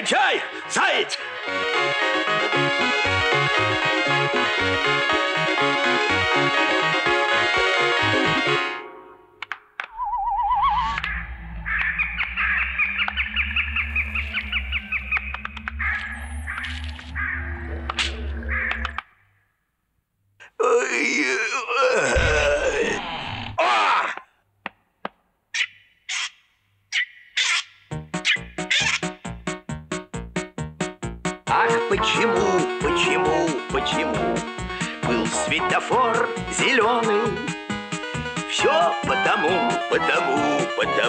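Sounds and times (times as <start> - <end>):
warbling whistle-like effects: 9.9 - 19.0
low hum: 9.9 - 19.2.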